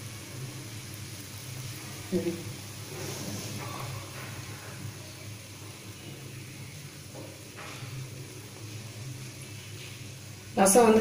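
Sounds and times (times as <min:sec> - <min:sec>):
soup bubbling at a simmer: 0:00.0 - 0:10.6.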